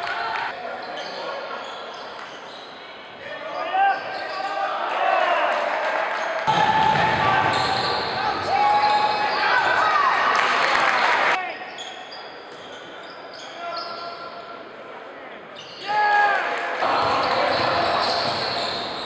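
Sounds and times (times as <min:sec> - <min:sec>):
voices echoing in a hall: 0:00.0 - 0:19.0
sneakers squeaking on court: 0:00.8 - 0:03.0, 0:03.6 - 0:04.5, 0:07.5 - 0:09.6, 0:16.9 - 0:19.0.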